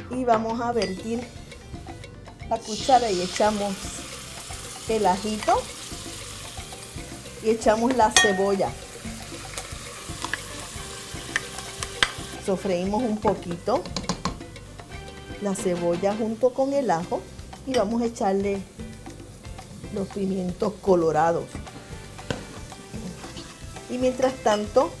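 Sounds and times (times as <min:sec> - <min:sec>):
onion sizzling in oil: 0:01.0 - 0:25.0
spatula stirring in a pot: 0:02.7 - 0:12.5, 0:21.6 - 0:25.0.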